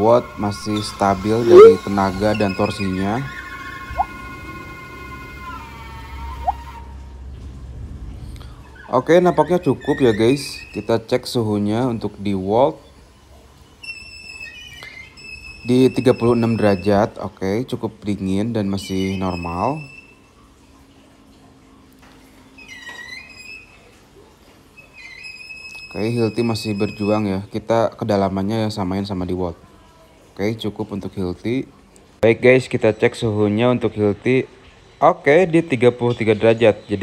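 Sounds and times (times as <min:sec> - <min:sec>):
cordless drill high motor whine: 0:00.0 - 0:06.8
short squeak: 0:00.6 - 0:04.1, 0:13.8 - 0:17.1, 0:22.6 - 0:24.0, 0:24.8 - 0:27.3.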